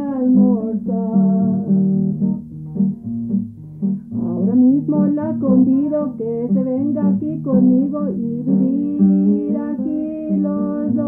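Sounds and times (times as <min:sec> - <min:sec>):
acoustic guitar folk song: 0:00.0 - 0:11.0.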